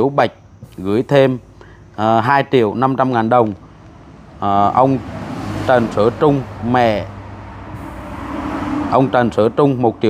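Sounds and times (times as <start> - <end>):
rushing background noise: 0.0 - 10.0
steady low hum: 0.0 - 10.0.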